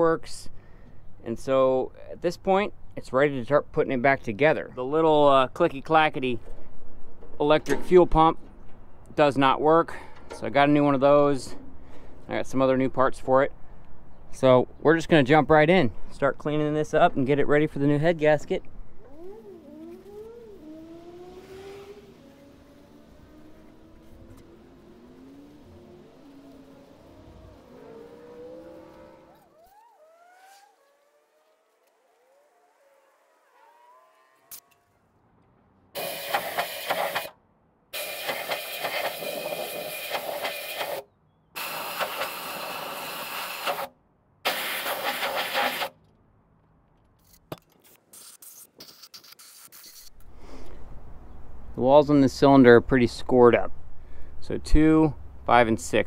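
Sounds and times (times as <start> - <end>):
compressed air blasts hissing: 36.0 - 37.3, 38.0 - 41.0, 44.5 - 46.0, 48.1 - 50.6.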